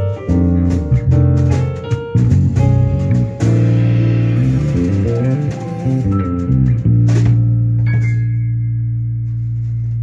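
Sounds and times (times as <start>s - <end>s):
electric bass low note: 0.0s - 10.0s
piano chord: 0.0s - 10.0s.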